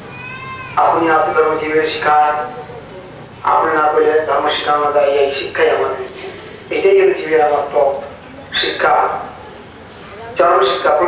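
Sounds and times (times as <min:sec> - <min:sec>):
high-pitched cry: 0:00.1 - 0:01.6
man speaking through loudspeaker: 0:00.6 - 0:11.0.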